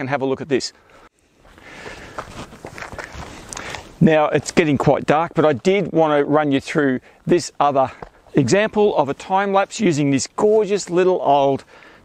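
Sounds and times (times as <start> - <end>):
footsteps on gravelly dirt: 1.4 - 5.9.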